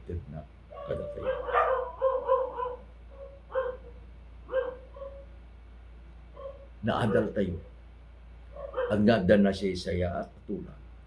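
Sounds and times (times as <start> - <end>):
dog yapping: 0.7 - 5.3, 6.3 - 7.4, 8.5 - 9.1.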